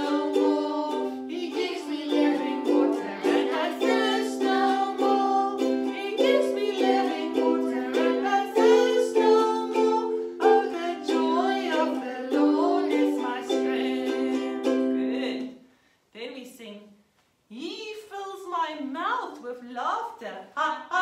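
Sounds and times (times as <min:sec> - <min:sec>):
ukulele strumming: 0:00.0 - 0:15.5
woman singing: 0:00.0 - 0:15.6.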